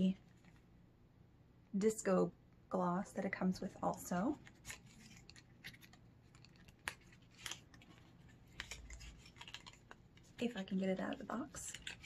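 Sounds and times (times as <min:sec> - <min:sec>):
small cardboard box handled: 0:04.3 - 0:12.0.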